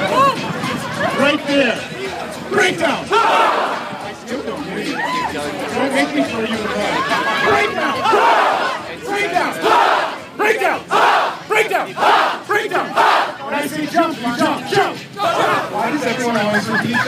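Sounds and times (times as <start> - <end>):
crowd growling and yelling: 0.0 - 17.0.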